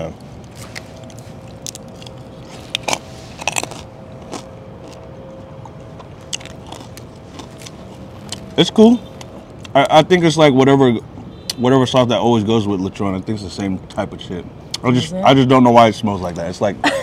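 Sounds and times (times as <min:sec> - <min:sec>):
crunching crispy food: 0:00.3 - 0:05.1, 0:06.0 - 0:08.7.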